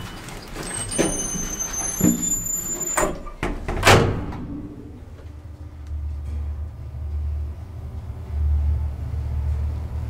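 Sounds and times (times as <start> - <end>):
elevator door bang: 3.0 - 5.2
low steady rumble: 4.0 - 10.0.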